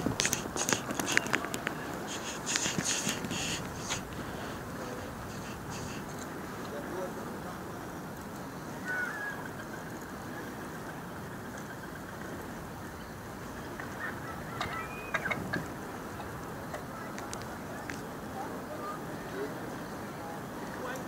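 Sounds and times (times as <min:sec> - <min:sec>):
bird calls: 0:00.0 - 0:06.6, 0:08.6 - 0:18.0
sea: 0:00.0 - 0:21.0
wind: 0:00.0 - 0:21.0.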